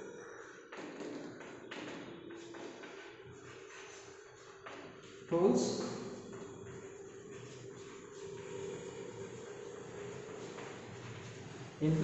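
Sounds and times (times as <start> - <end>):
steady low hum: 2.1 - 12.0.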